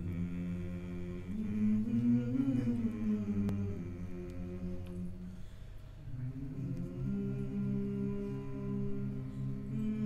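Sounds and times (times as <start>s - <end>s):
a cappella group singing chords: 0.0s - 10.0s.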